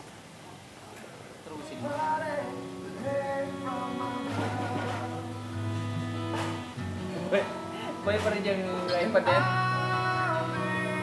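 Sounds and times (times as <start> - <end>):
person singing: 1.6 - 6.4, 7.1 - 11.0
acoustic guitar chords: 1.6 - 11.0.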